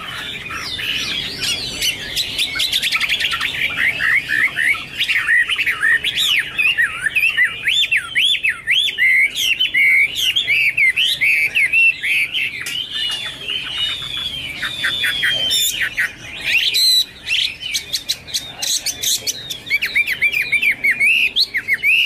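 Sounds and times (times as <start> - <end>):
bird singing varied song: 0.0 - 22.0.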